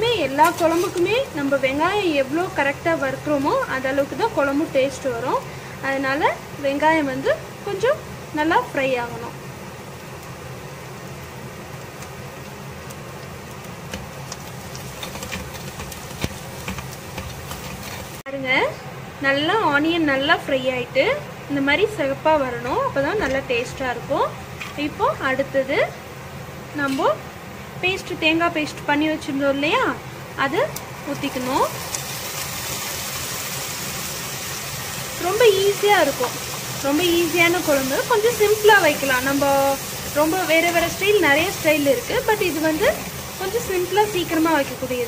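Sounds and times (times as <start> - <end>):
onions sizzling in oil: 0.0 - 18.3, 21.1 - 45.0.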